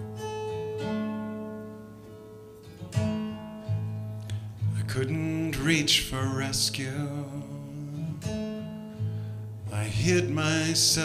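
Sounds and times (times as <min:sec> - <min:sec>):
acoustic guitar strumming: 0:00.0 - 0:11.0
person singing: 0:04.7 - 0:08.3, 0:09.7 - 0:11.0.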